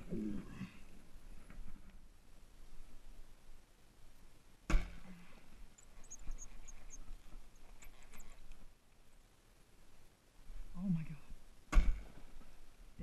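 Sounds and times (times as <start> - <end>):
faint high chirps and ticks: 5.6 - 11.5.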